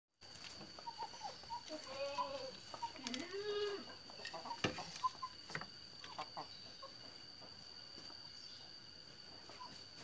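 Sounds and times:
chicken clucking: 0.6s - 7.8s.

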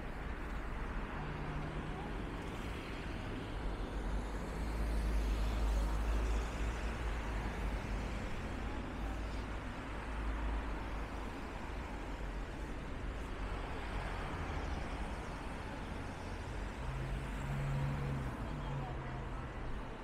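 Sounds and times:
cars driving past: 13.4s - 20.0s.

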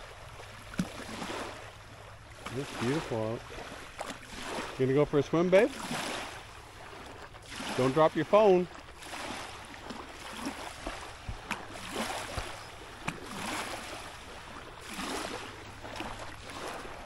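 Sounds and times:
waves lapping on sandy shore: 0.0s - 17.0s.

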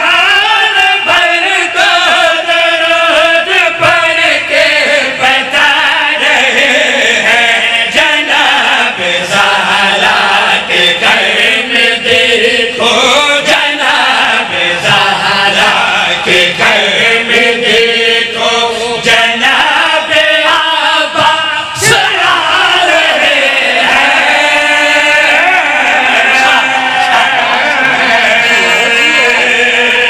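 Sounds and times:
lead reciter chanting: 0.0s - 30.0s
men chanting in chorus: 0.0s - 30.0s.

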